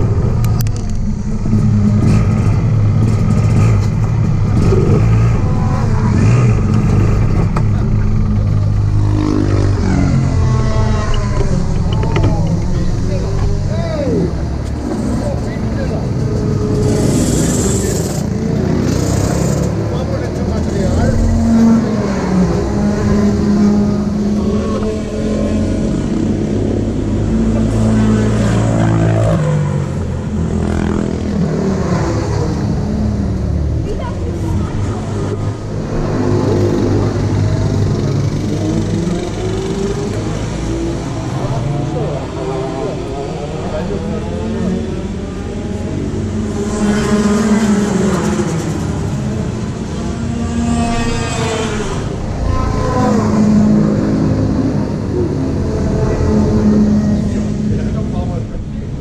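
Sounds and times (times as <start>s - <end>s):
people's voices: 3.6s - 50.3s, 51.9s - 59.0s.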